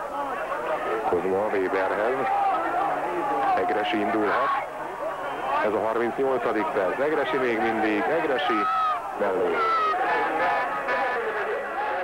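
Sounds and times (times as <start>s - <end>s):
stadium crowd noise: 0.0s - 12.0s
man commentating: 0.8s - 4.6s, 5.4s - 12.0s.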